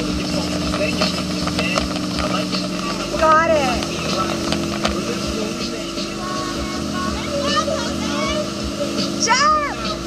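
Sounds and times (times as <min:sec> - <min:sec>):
motorboat engine drone: 0:00.0 - 0:10.0
rush of churning wake: 0:00.0 - 0:10.0.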